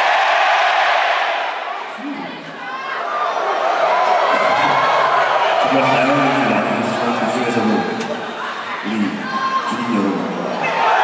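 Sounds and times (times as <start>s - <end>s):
concert crowd cheering: 0.0s - 11.0s.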